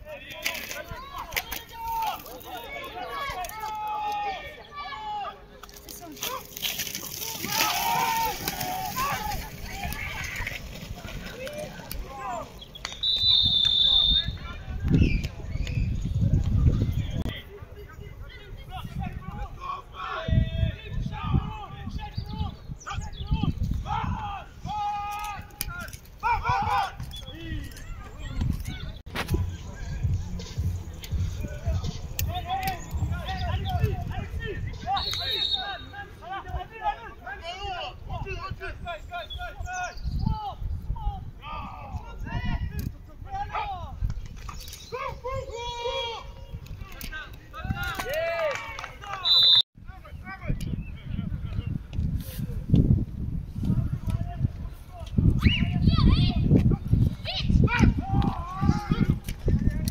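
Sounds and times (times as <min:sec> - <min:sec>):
voices shouting sharp calls: 0:00.0 - 0:15.2, 0:18.4 - 0:30.0, 0:31.4 - 0:42.4, 0:44.6 - 0:49.6
crowd noise: 0:00.0 - 0:21.8, 0:24.6 - 0:39.8
referee's whistle: 0:12.8 - 0:14.4, 0:34.9 - 0:36.0, 0:49.2 - 0:49.6.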